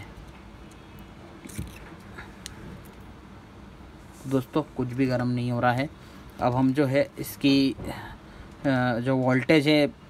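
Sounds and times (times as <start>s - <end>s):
low room hum: 0.0s - 10.0s
soft rustle of handling: 4.0s - 5.1s.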